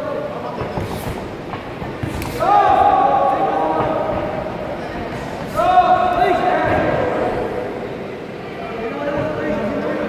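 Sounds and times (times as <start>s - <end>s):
person shouting: 2.4s - 3.6s.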